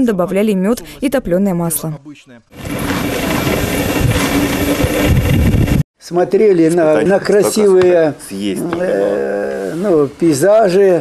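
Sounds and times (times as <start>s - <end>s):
loud engine drone: 2.6s - 5.8s.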